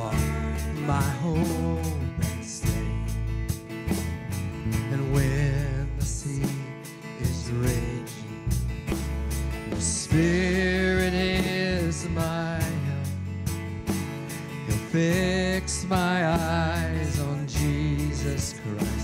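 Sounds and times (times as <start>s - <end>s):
person singing: 0.0s - 3.2s, 4.5s - 8.6s, 9.7s - 13.3s, 14.6s - 19.0s
drum kit: 0.0s - 19.0s
electric bass guitar: 0.0s - 19.0s
guitar: 0.0s - 19.0s.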